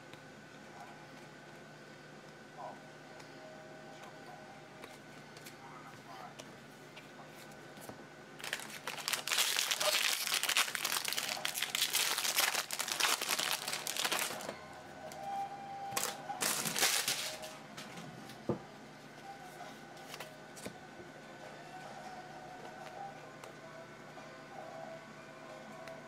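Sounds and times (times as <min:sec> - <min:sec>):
handling of cards: 0:06.4 - 0:14.6, 0:16.0 - 0:17.6
card pack wrapper crinkling: 0:08.4 - 0:14.5, 0:16.0 - 0:17.5.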